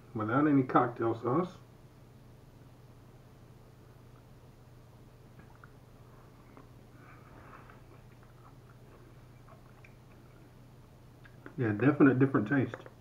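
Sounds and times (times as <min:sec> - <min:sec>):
low steady hum: 0:00.0 - 0:13.0
faint chewing and mouth clicks: 0:05.3 - 0:11.6.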